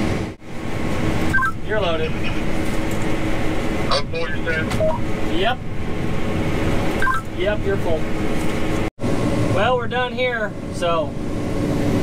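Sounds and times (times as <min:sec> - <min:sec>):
combine harvester running: 0:00.0 - 0:12.0.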